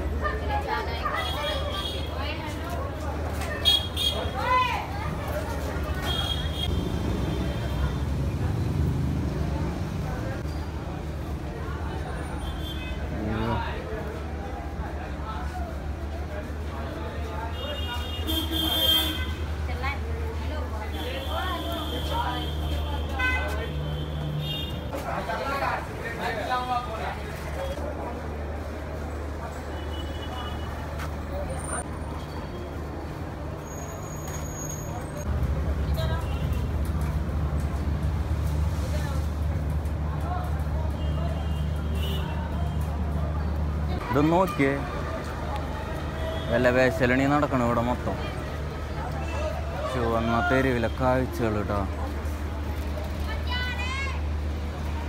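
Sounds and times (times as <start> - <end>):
low street rumble: 0.0 - 55.0.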